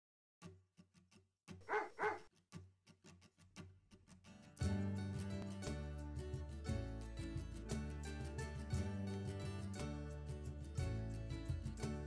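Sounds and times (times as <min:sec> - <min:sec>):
dog barking: 0:01.7 - 0:02.3.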